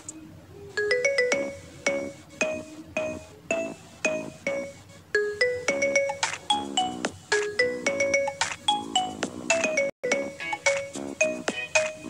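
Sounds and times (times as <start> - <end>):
bell-like music notes: 0.8 - 12.0.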